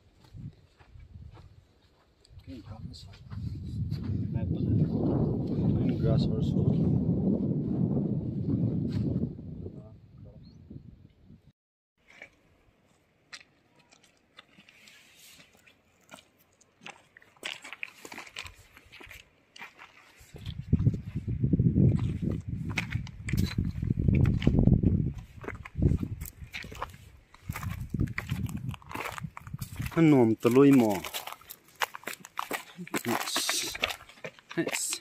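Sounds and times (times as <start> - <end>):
low rumble in gusts: 2.8 - 11.5, 27.5 - 30.0
footsteps crunching on pebbles: 12.0 - 35.0.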